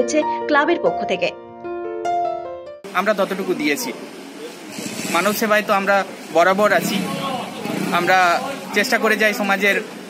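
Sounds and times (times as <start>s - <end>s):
man speaking: 5.0s - 9.9s.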